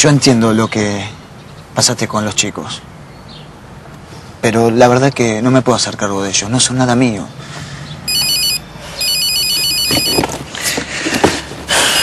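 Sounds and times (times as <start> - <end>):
mobile phone ringtone trilling: 8.1 - 10.3.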